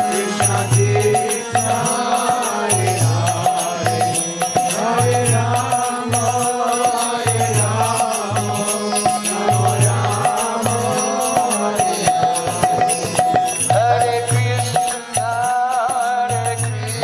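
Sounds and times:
high jingling percussion: 0.0 - 17.0.

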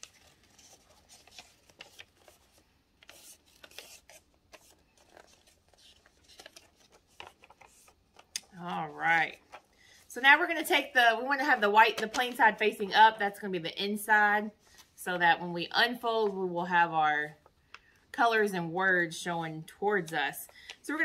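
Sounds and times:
paper being folded and creased: 0.0 - 8.6.

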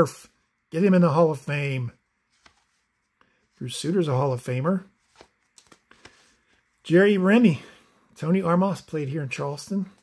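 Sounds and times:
cards sliding papery ticks: 5.0 - 6.4.

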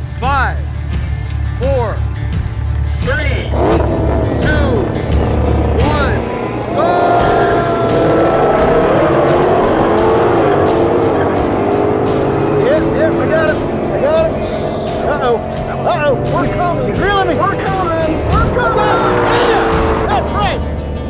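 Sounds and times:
sports cars accelerating hard: 3.4 - 21.0.

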